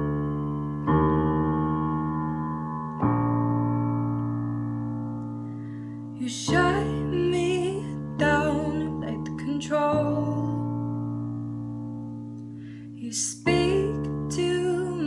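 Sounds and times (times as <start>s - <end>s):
keyboard chords ringing: 0.0s - 12.9s
woman singing: 6.2s - 10.9s, 13.0s - 15.0s.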